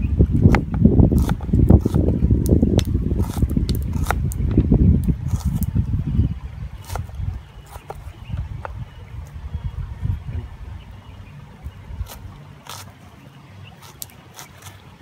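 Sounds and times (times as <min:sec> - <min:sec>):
wind rumble on microphone: 0:00.0 - 0:12.9.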